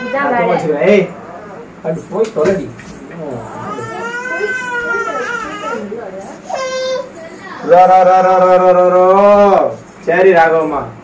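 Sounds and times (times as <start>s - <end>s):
infant crying: 0.0s - 0.6s, 3.4s - 7.1s.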